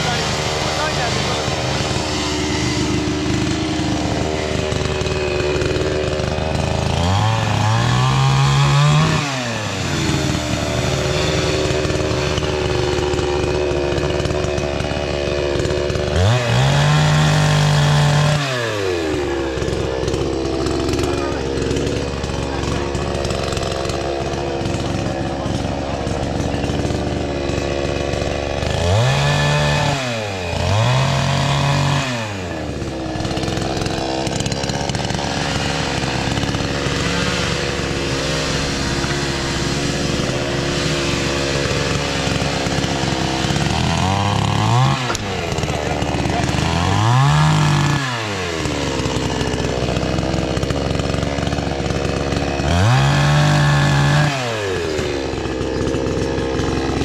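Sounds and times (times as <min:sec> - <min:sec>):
chainsaw idling and revving: 0:00.0 - 0:57.0.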